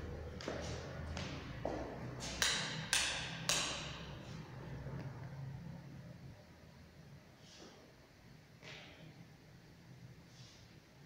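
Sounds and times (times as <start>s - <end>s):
footsteps on tiled floor: 0.0s - 2.5s.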